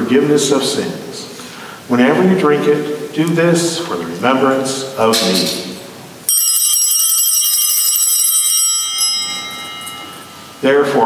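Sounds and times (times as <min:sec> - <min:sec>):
bell ringing: 0:06.3 - 0:11.0.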